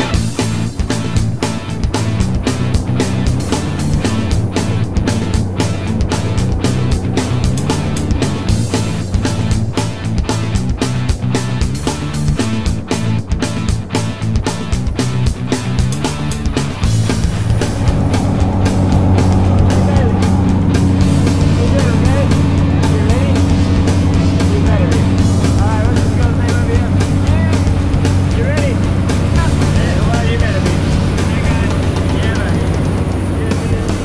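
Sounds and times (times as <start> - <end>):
raised voices: 0.0 - 14.3, 15.3 - 34.0
plane engine and propeller drone: 0.0 - 34.0.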